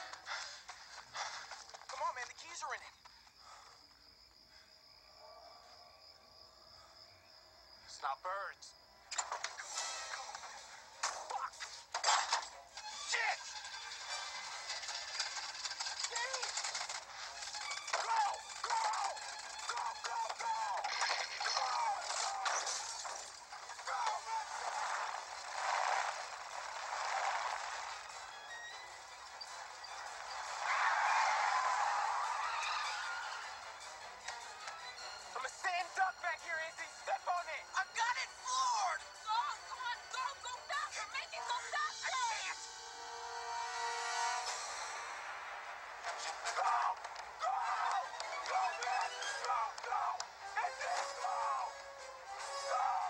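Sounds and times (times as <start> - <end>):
tense music score: 8.7 - 53.0
voices: 17.9 - 27.6, 35.3 - 42.6, 46.4 - 51.8.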